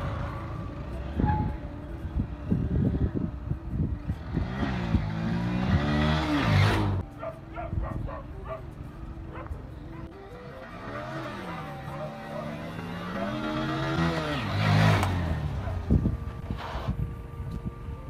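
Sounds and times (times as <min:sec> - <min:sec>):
motorcycle engine revving: 0:00.0 - 0:18.0.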